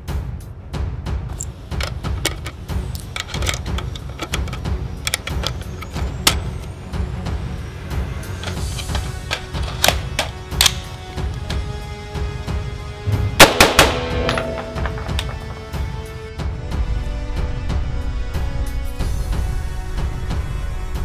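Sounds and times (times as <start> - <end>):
background music with a beat: 0.0 - 21.0
rifle shots: 13.1 - 15.6.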